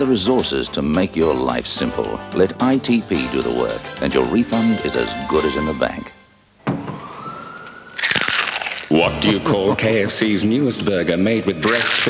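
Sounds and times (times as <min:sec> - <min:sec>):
rising siren-like tone: 0:06.9 - 0:08.2.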